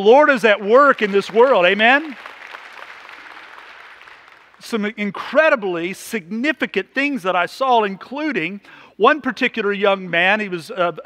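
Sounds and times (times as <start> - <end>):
congregation applauding: 0.6 - 4.8.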